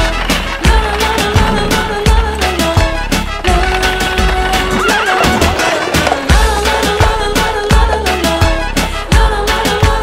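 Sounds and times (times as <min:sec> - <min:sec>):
backing music: 0:00.0 - 0:10.0
horse whinnying: 0:04.0 - 0:06.4.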